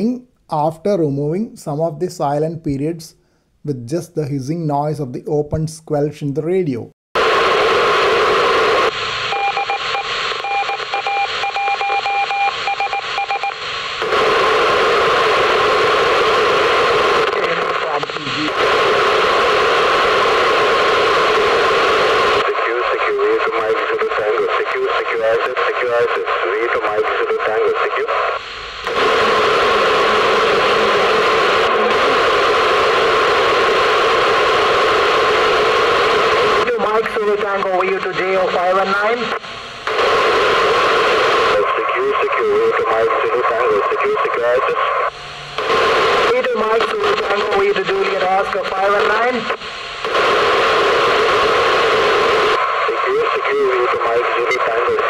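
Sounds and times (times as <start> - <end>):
loud radio hiss: 7.2 - 55.0
morse code tone: 9.3 - 13.6.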